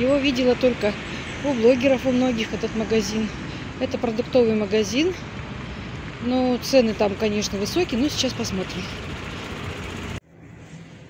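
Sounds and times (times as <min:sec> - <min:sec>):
street traffic noise: 0:00.0 - 0:11.0.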